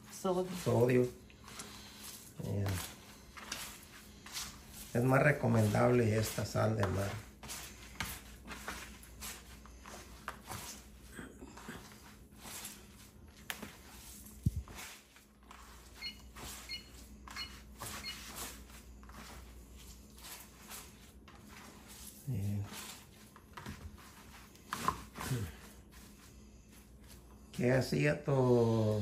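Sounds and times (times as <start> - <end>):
hands kneading cheese curds: 0.0 - 29.0
electronic beeps: 16.0 - 18.2.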